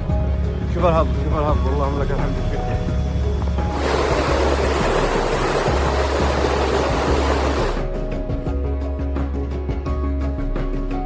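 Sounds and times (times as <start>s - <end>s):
background music with low bass: 0.0s - 11.0s
water rushing over rocks: 3.7s - 7.8s.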